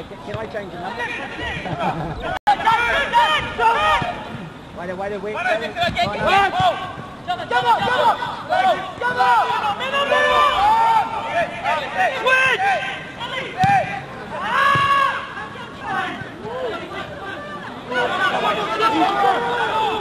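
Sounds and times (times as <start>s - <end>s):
faint outdoor background noise: 0.0s - 20.0s
several people talking: 0.0s - 20.0s.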